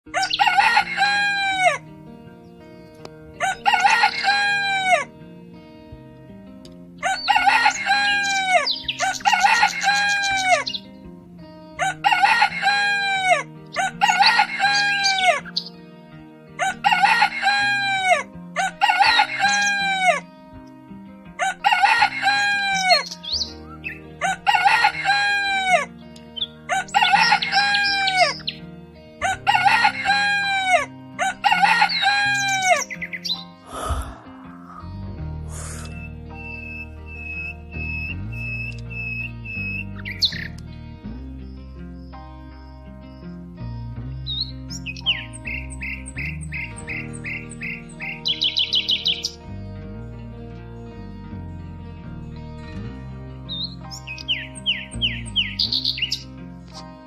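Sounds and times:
rooster crowing: 0.1s - 1.8s, 3.4s - 5.1s, 7.0s - 10.6s, 11.8s - 15.4s, 16.6s - 20.2s, 21.4s - 23.0s, 24.2s - 25.9s, 29.2s - 32.8s
soft background music: 0.1s - 57.0s.

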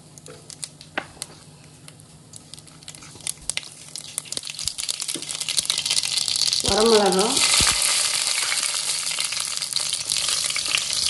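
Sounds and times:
seeds sizzling in hot oil: 2.5s - 11.0s.

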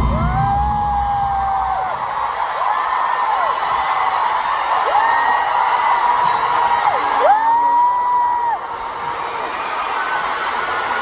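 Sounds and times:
crowd cheering: 0.0s - 11.0s.

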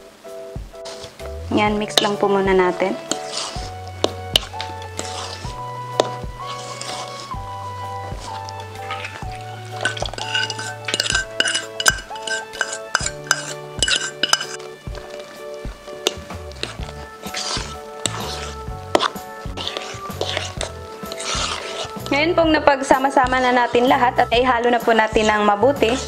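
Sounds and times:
background music with beat: 0.0s - 1.9s, 2.5s - 26.0s
spoon scraping bowl: 0.8s - 1.2s, 1.8s - 26.0s
spoon clinking in plastic bowl: 9.8s - 14.6s.

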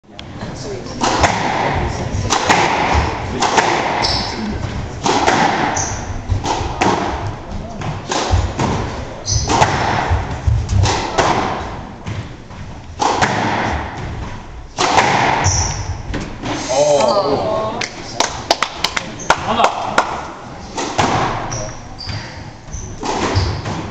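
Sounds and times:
squash ball hits: 1.0s - 12.4s, 13.0s - 16.6s, 18.5s - 22.3s, 22.9s - 23.9s
shoes squeaking on wooden floor: 2.9s - 13.0s, 21.3s - 23.9s.

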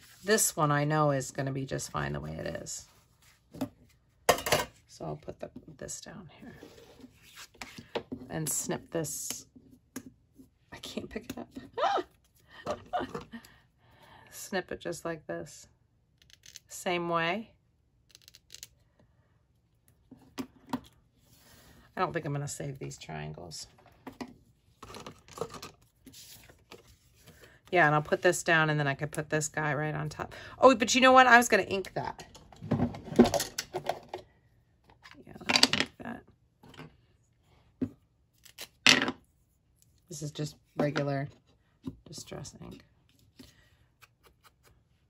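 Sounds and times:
craft tools handled on tabletop: 23.8s - 27.3s.

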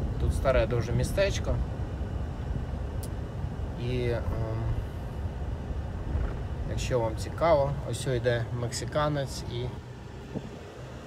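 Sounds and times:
car driving rumble: 0.0s - 11.0s.

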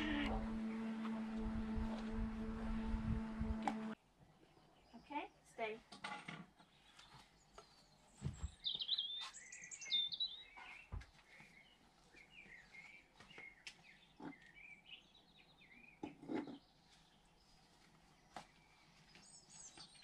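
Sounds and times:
soft low thumps: 0.0s - 4.0s
birds singing and chirping: 6.6s - 17.5s, 18.2s - 20.0s.

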